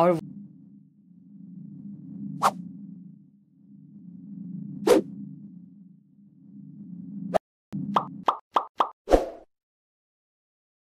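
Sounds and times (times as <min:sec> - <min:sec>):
low steady hum: 0:00.0 - 0:08.2.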